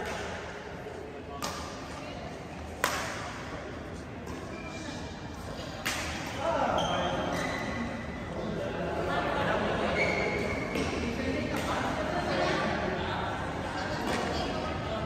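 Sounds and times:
rackets hitting a shuttlecock: 0:01.4 - 0:02.0, 0:02.7 - 0:03.5, 0:05.8 - 0:06.4.

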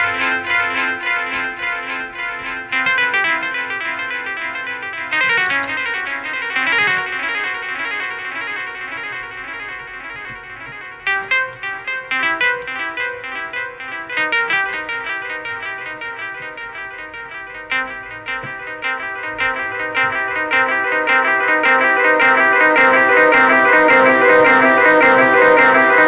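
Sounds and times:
synthesizer playing plucky notes: 0:00.0 - 0:26.0.

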